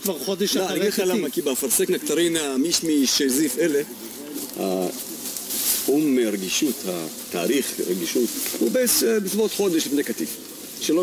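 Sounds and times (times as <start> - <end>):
dove cooing: 0.0 - 11.0.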